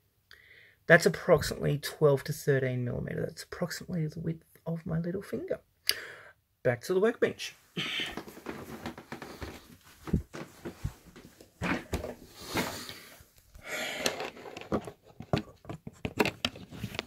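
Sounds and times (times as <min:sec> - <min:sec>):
breathing: 0:00.3 - 0:00.9, 0:05.9 - 0:06.4, 0:07.8 - 0:08.3, 0:12.3 - 0:14.4
camera handling knocks and rubbing: 0:14.0 - 0:17.0.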